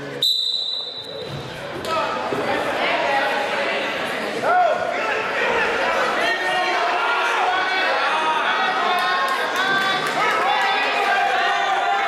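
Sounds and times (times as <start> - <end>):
referee's whistle blast: 0.2 - 1.2.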